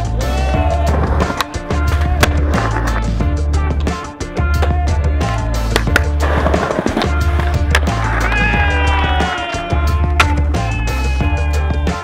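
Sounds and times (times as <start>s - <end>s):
music with heavy bass beat: 0.0s - 12.0s
skateboard wheels rolling on tiles: 0.7s - 3.2s, 5.7s - 9.2s
skateboard clacks: 0.9s - 3.1s, 5.7s - 9.4s, 10.1s - 10.6s.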